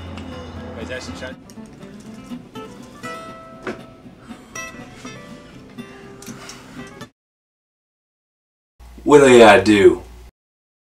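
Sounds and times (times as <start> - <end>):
acoustic guitar plucked notes: 0.0 - 5.9.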